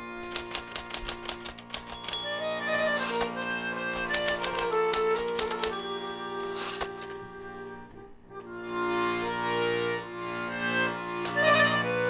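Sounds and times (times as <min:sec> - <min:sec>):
background music: 0:00.0 - 0:12.0
typewriter keys clicking: 0:00.2 - 0:07.2.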